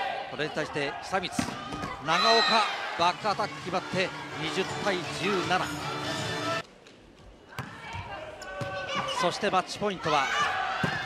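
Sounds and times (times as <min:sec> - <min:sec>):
crowd voices: 0:00.0 - 0:06.6.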